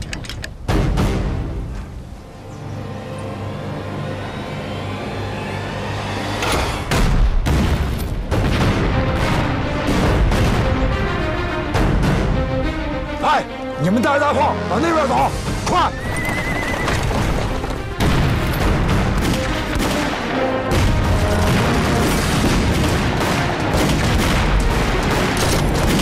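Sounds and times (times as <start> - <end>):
dramatic music: 0.0 - 26.0.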